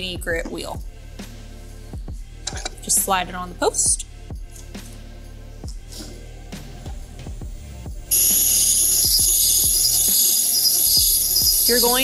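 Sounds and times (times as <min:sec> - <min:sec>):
background music with beat: 0:00.0 - 0:12.0
sharpening wheel grinding hiss: 0:08.1 - 0:12.0.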